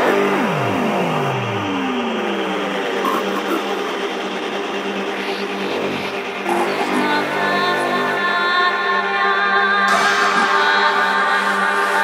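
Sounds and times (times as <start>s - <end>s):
steady held drone: 0.0s - 12.0s.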